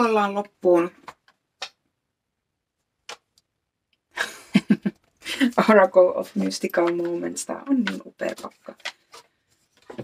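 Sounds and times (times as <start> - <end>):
cards clicking and tapping: 1.0 - 1.8, 3.0 - 3.5, 6.3 - 10.0.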